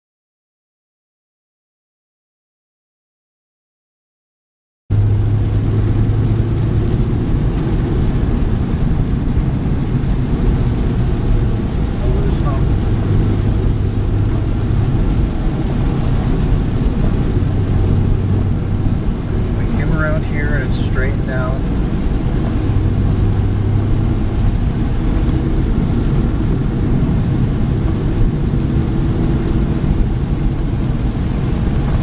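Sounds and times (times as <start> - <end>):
car driving on wet road: 4.9 - 32.0.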